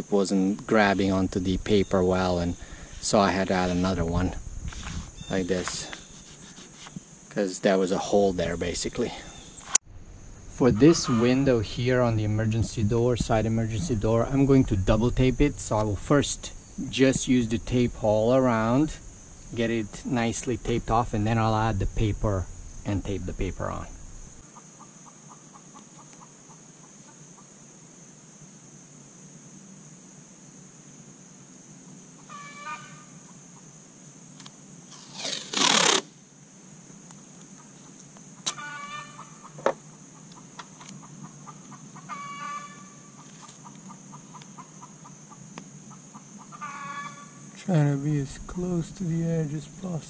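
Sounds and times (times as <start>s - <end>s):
steady high hiss: 0.0s - 50.0s
short pitched calls: 4.8s - 7.1s, 10.6s - 11.8s, 34.9s - 36.1s
masking tape ripping off roll: 34.9s - 36.2s.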